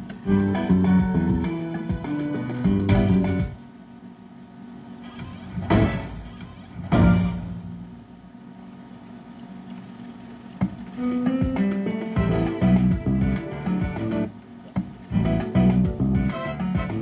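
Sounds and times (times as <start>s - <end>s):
guitar slot machine music: 0.0s - 3.6s, 5.2s - 8.1s, 10.7s - 14.3s, 14.9s - 17.0s.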